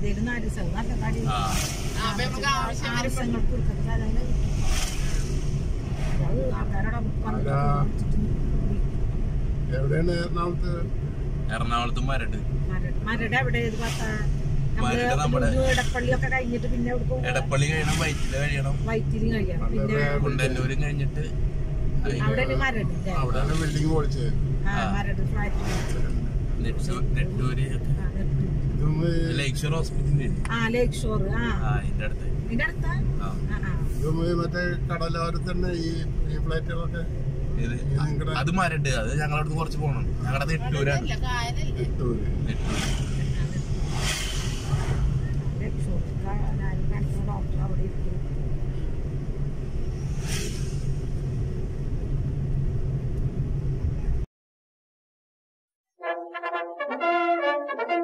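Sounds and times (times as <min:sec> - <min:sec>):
car engine and tyres rumble: 0:00.0 - 0:54.2
brief rushes of noise: 0:04.4 - 0:06.5, 0:42.5 - 0:45.6, 0:49.8 - 0:51.4
person speaking: 0:14.8 - 0:16.2, 0:40.3 - 0:41.3.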